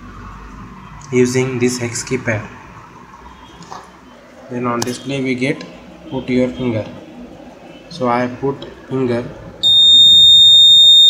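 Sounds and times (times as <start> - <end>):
electronic alarm buzzer tone: 9.6 - 11.0.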